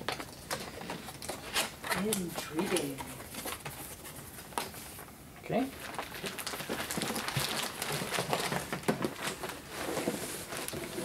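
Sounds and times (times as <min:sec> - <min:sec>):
packing rustling and crinkling: 0:00.0 - 0:11.0.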